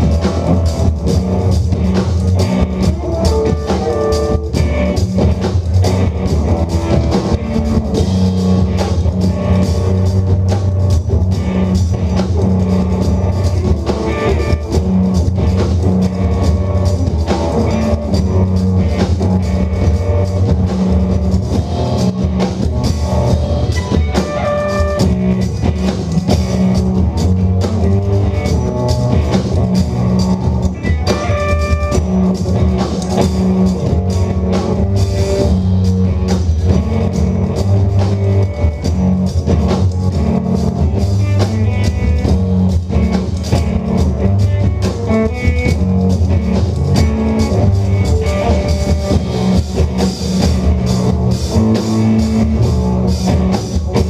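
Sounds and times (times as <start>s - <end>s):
drum kit playing: 0.0s - 54.0s
electric guitar: 0.0s - 54.0s.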